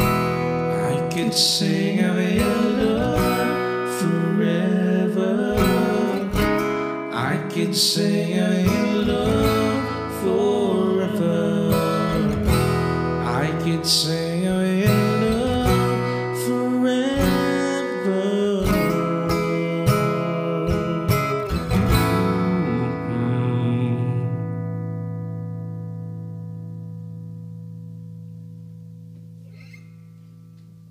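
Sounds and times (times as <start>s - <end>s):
guitar strumming chords: 0.0s - 30.9s.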